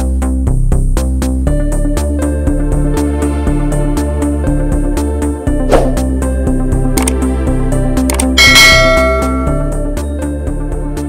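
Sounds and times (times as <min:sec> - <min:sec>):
click sound effect: 0:07.0 - 0:07.2, 0:08.1 - 0:09.2
bright bell chime: 0:08.4 - 0:10.0.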